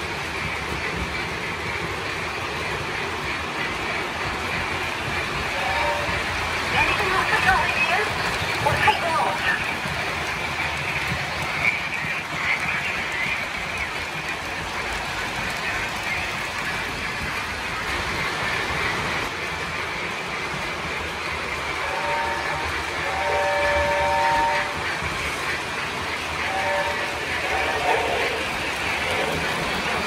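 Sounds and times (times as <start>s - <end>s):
model trains rolling rumble: 0.0s - 30.0s
electronic steam whistle: 21.8s - 24.8s, 26.5s - 27.9s.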